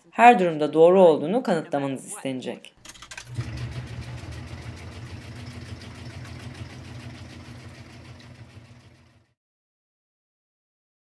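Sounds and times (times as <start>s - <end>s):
fast fine rattle: 2.8s - 9.3s
claw game motor humming: 2.9s - 9.2s.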